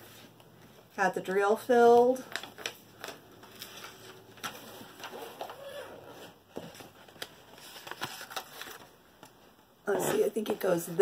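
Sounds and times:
cover film peeling and crinkling: 2.0 - 9.4.

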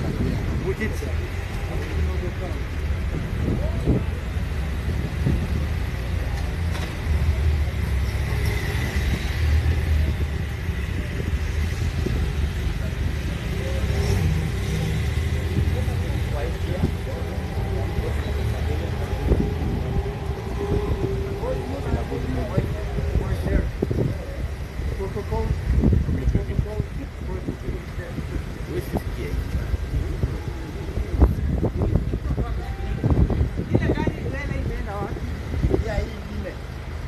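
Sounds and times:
indistinct voices talking: 0.0 - 37.0
steady low rumble: 15.3 - 35.7.

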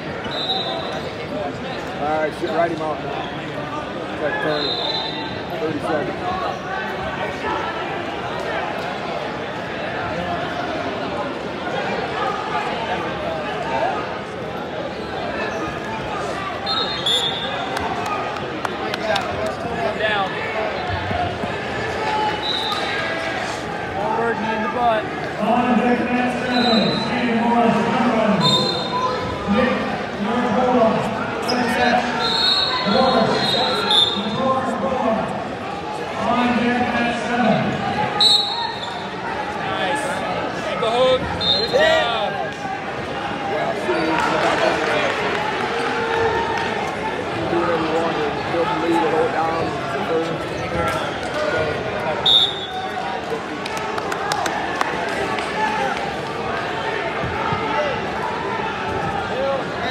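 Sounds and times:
referee whistle blasts: 0.2 - 1.0, 4.5 - 5.4, 16.6 - 17.6, 22.4 - 22.9, 28.4 - 29.0, 32.2 - 34.4, 38.2 - 39.1, 41.4 - 41.8, 52.2 - 52.8.

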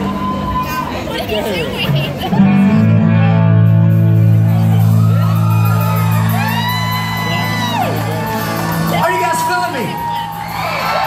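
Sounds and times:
crowd whooping and shouting: 0.0 - 1.4, 4.1 - 11.0.

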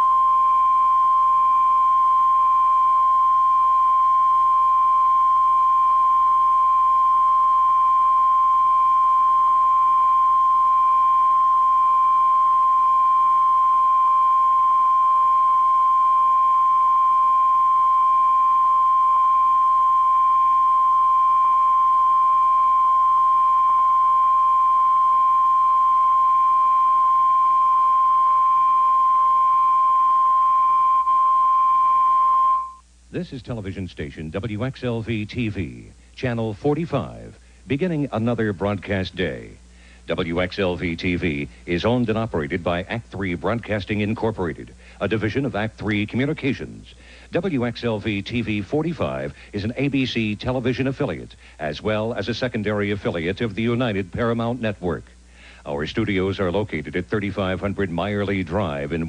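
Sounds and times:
faint low hum: 0.0 - 59.0
steady sine test tone: 0.0 - 59.0.

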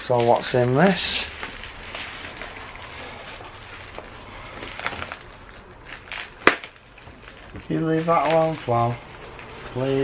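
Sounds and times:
bubble wrap rustling: 0.0 - 10.0.

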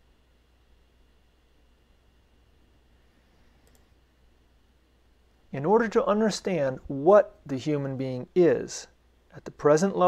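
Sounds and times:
low steady hum: 0.0 - 10.0
computer mouse clicks: 3.6 - 4.0.

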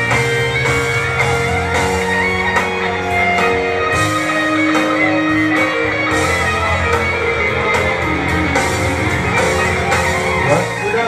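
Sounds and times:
guitar: 0.0 - 11.0
live rock band: 0.0 - 11.0.

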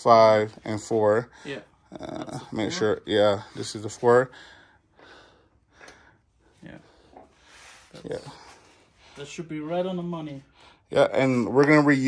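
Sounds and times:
faint breath: 4.3 - 9.3.

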